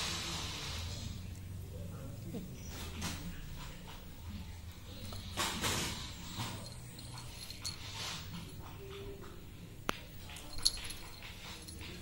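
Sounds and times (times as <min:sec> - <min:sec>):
collar bell jingle: 0:04.8 - 0:08.4, 0:10.2 - 0:12.0.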